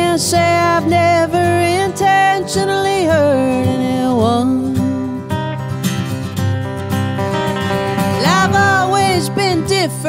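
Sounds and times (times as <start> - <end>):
woman singing: 0.0 - 5.4, 8.1 - 10.0
acoustic guitar strumming: 0.0 - 10.0.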